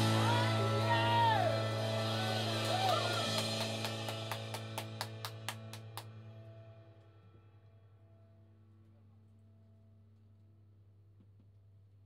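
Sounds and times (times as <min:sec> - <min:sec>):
rock band chord ringing: 0:00.0 - 0:06.0
drum kit strikes: 0:00.0 - 0:06.2.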